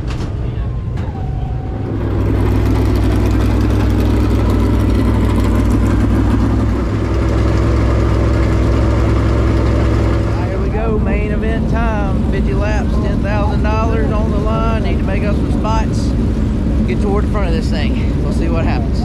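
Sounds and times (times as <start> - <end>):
race car engine idling: 0.0 - 19.0.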